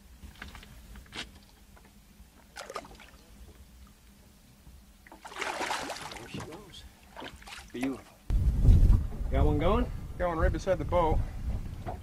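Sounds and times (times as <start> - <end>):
water splashing beside boat: 0.3 - 4.1, 5.0 - 8.2.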